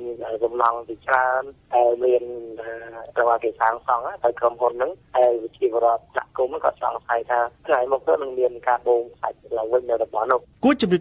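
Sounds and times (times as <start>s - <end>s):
person talking over radio: 0.0s - 10.4s.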